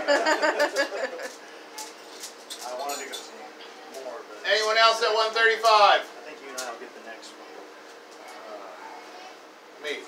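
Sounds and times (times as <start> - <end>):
person laughing: 0.0 - 1.4.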